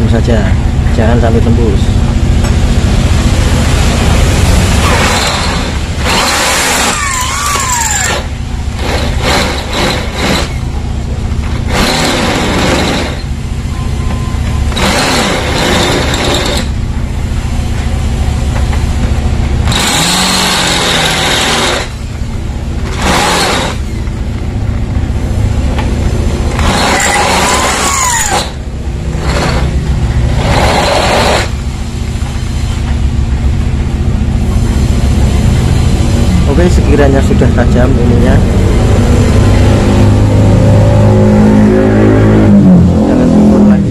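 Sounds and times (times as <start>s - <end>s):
drill bit grinding on metal: 4.8s - 10.6s, 11.7s - 13.3s, 14.7s - 16.8s, 19.6s - 22.0s, 22.9s - 24.0s, 26.5s - 28.6s, 30.4s - 31.6s
electric drill low hum: 11.7s - 13.3s, 14.0s - 16.8s, 19.6s - 22.0s, 22.8s - 24.0s.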